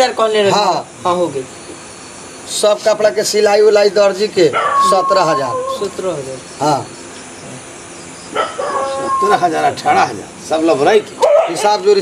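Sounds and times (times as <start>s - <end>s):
men talking: 0.0s - 12.0s.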